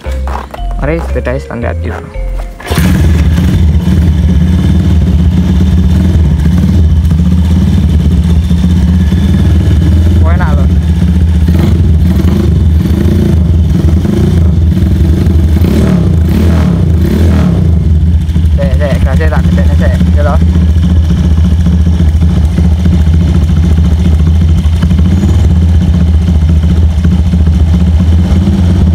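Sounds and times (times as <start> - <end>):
motorcycle engine idling: 2.6 - 28.9.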